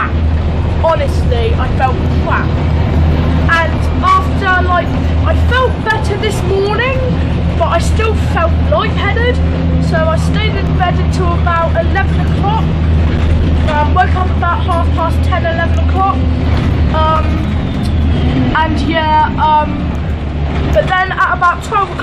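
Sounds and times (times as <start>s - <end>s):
boy talking: 0.0s - 0.2s, 0.8s - 2.6s, 3.5s - 12.7s, 13.6s - 16.3s, 16.9s - 17.4s, 18.5s - 19.9s, 20.7s - 22.0s
bus engine drone: 0.0s - 22.0s.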